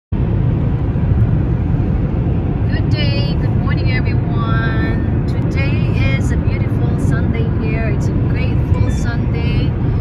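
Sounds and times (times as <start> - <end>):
car road and tyre rumble: 0.1 - 10.0.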